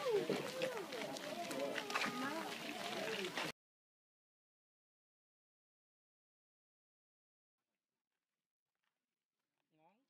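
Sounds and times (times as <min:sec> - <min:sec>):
people talking over one another: 0:00.0 - 0:03.5.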